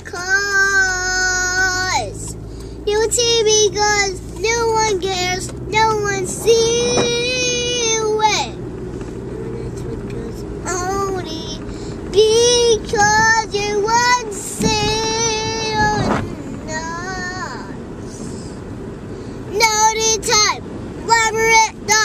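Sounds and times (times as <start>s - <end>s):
low car road rumble: 0.0s - 22.0s.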